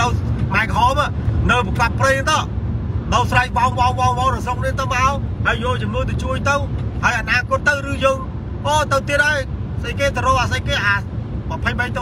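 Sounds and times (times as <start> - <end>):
low rumble of car noise: 0.0 - 12.0
man talking: 0.0 - 12.0.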